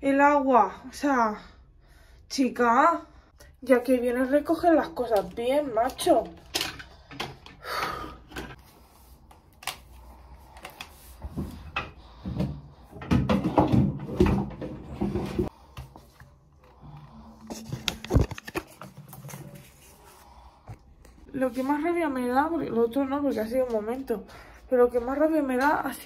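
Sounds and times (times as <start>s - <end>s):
objects knocking and rustling: 5.1s - 8.6s, 10.6s - 20.0s.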